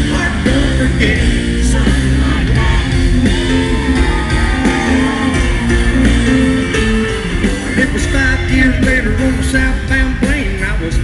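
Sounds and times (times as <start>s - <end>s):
guitar melody: 0.0s - 10.6s
country band playing: 0.0s - 11.0s
steady bass: 0.0s - 11.0s.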